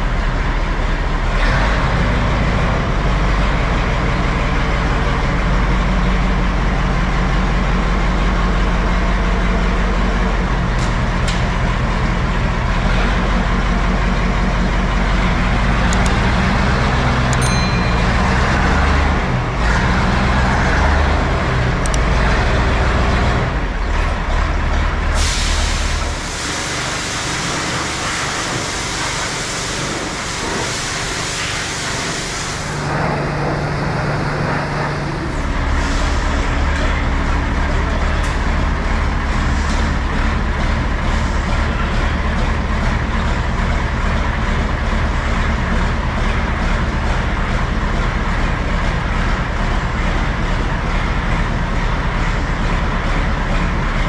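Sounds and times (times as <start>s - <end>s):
diesel truck engine under load: 0.0s - 54.0s
loud steady hiss: 25.2s - 35.2s.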